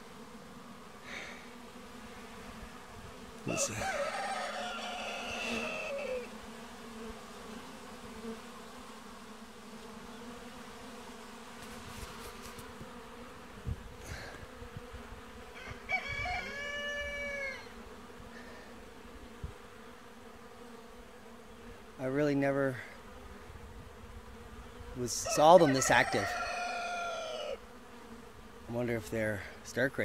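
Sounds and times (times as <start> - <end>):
honeybees buzzing: 0.0 - 30.0
rooster crowing: 3.5 - 6.3, 15.5 - 17.8, 25.2 - 27.6.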